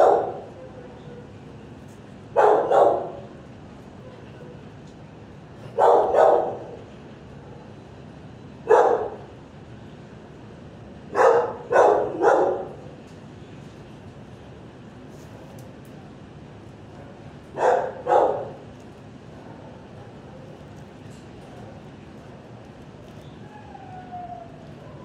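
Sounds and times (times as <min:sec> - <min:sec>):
dog barking: 0:00.0 - 0:00.5, 0:02.4 - 0:03.2, 0:05.7 - 0:06.7, 0:08.6 - 0:09.2, 0:11.1 - 0:12.8, 0:17.6 - 0:18.6.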